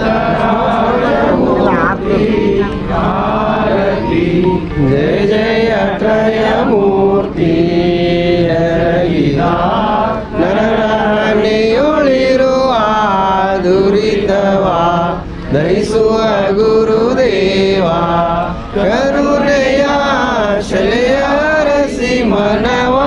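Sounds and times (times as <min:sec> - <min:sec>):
devotional hymn singing: 0:00.0 - 0:23.0.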